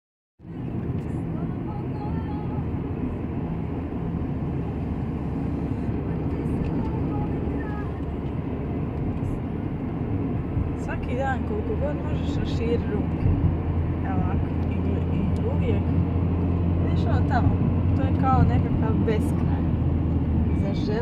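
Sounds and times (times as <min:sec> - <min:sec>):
car engine hum: 0:00.4 - 0:21.0.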